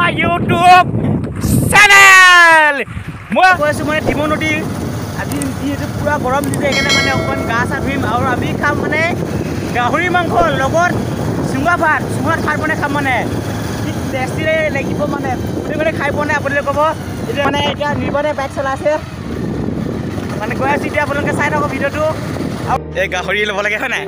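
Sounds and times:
wind noise on microphone: 0.0 - 22.9
motorcycle engine running: 3.1 - 22.7.

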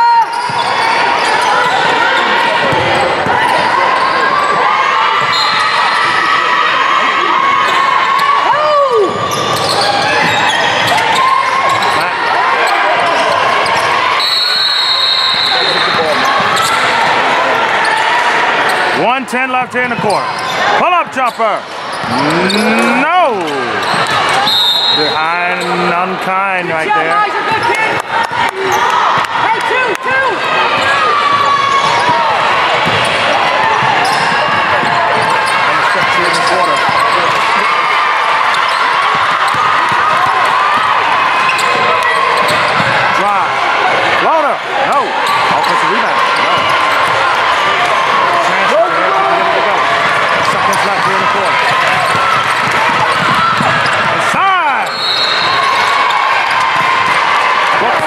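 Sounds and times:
sneakers squeaking: 0.2 - 6.3, 9.0 - 17.2, 21.3 - 25.9, 30.5 - 43.2, 45.1 - 48.2, 49.8 - 57.3
voices calling out: 20.0 - 43.6.

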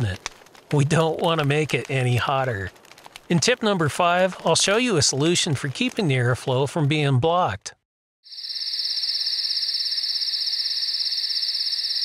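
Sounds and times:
crickets trilling: 8.3 - 12.0.

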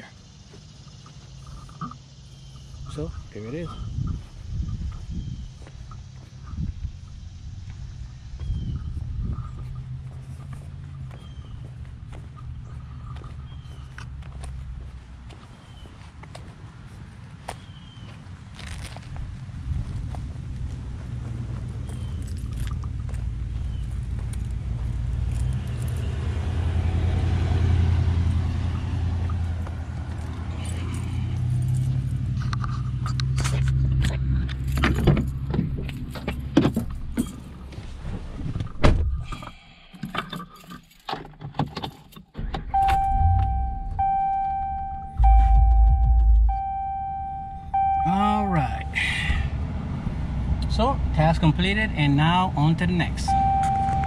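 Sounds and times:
wind rumble: 2.7 - 15.2, 18.9 - 30.4, 42.6 - 48.0
car door shutting thud: 38.8 - 39.2, 42.4 - 46.6
keys rattling: 40.0 - 42.4
electronic chime: 42.8 - 49.0, 53.3 - 54.0.

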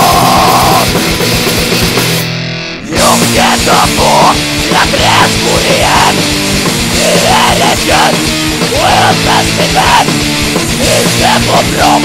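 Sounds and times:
electric guitar: 0.0 - 12.0
rock band instrumental: 0.0 - 12.0.

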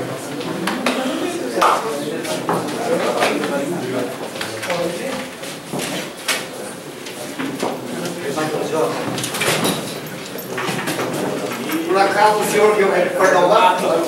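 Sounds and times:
indistinct chatter: 0.0 - 14.0.

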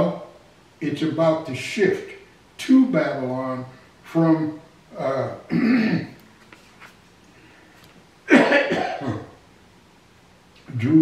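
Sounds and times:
man coughing: 5.5 - 6.2, 8.3 - 9.4.

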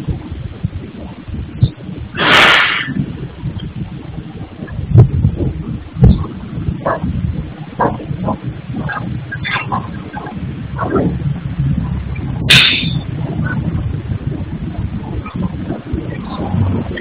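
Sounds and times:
low uneven rumble: 0.0 - 17.0
short rush of noise: 2.1 - 3.1.

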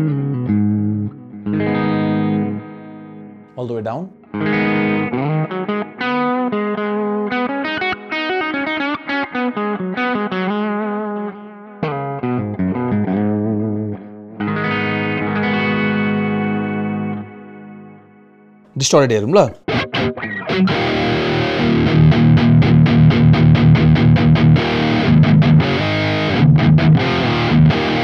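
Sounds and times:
distorted electric guitar: 0.0 - 3.5, 4.2 - 18.1, 19.6 - 28.0.

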